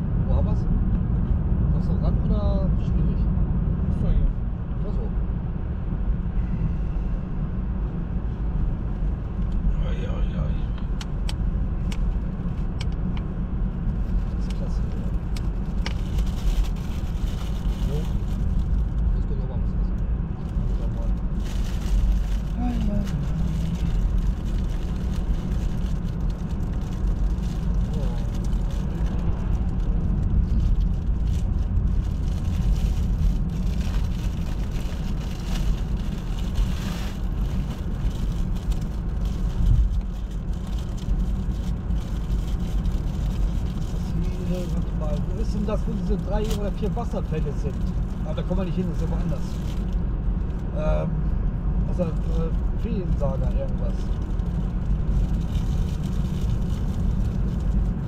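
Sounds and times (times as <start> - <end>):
road and tyre noise in car: 0.0 - 58.0.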